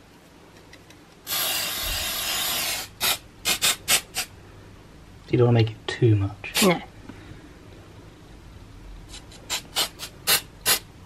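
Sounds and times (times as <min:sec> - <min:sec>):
aerosol spray hisses: 0:01.3 - 0:04.3.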